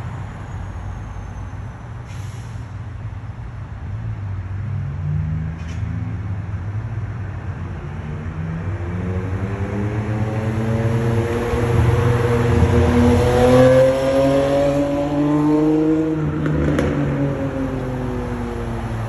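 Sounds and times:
low traffic rumble: 0:00.0 - 0:19.0
car engine accelerating: 0:07.8 - 0:19.0.

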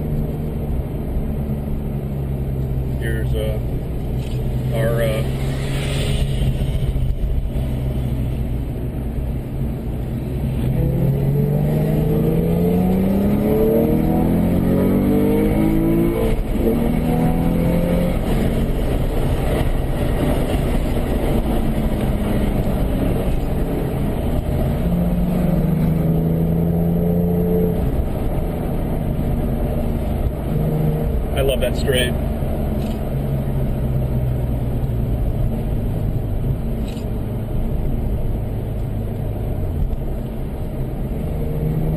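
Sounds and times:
car engine revving: 0:00.0 - 0:41.9.

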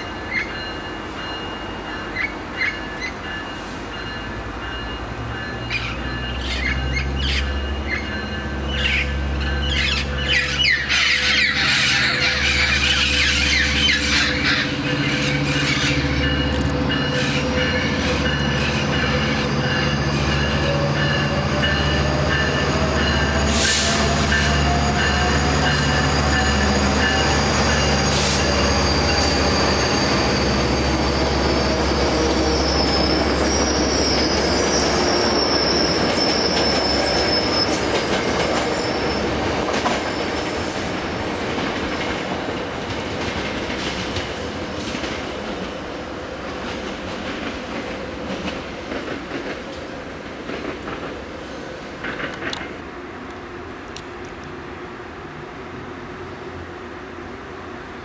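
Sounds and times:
train diesel engine drone: 0:00.0 - 0:58.0
train wheels clickety-clack: 0:01.2 - 0:52.8
high wheel squeal: 0:05.5 - 0:40.9.

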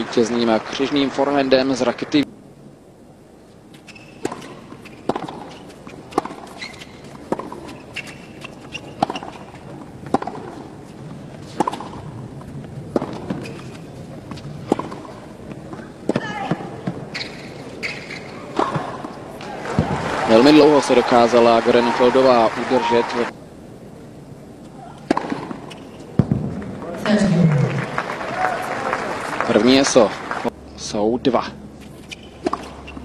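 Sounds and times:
low crowd hum: 0:00.0 - 0:33.0
tennis ball hitting racket: 0:03.8 - 0:20.0, 0:24.9 - 0:26.6, 0:31.8 - 0:33.0.

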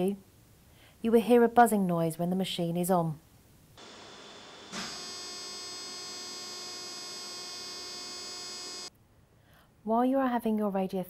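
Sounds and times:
machine buzzing: 0:03.8 - 0:08.9.

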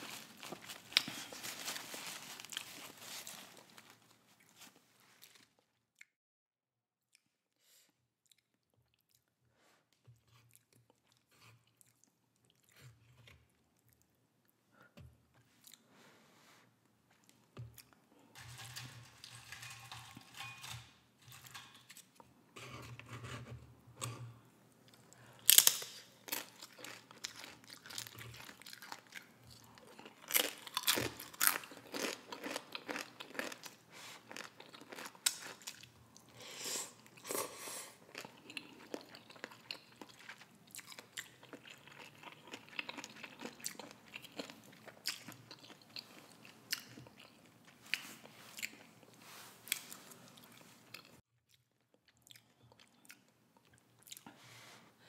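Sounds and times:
crunching chips: 0:00.0 - 0:04.0, 0:18.4 - 0:22.2, 0:25.4 - 0:35.9.

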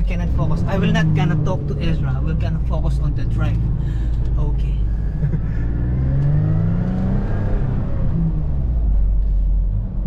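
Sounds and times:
car engine revving hard: 0:00.2 - 0:04.0, 0:04.9 - 0:08.7.

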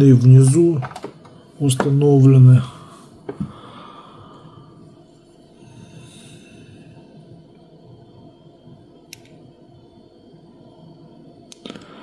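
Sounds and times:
low steady room noise: 0:00.0 - 0:12.0.

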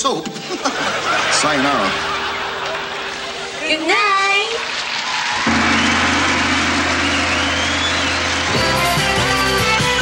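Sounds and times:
rhythmic band with bass notes: 0:00.9 - 0:10.0
sustained chord: 0:01.0 - 0:10.0.

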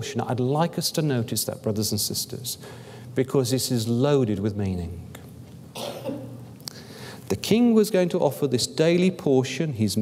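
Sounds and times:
person coughing: 0:05.8 - 0:06.4.

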